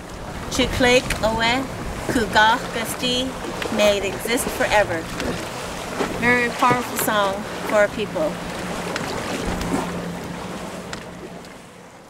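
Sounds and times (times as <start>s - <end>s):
water noise: 0.0s - 12.0s
wind over open water: 0.0s - 12.0s.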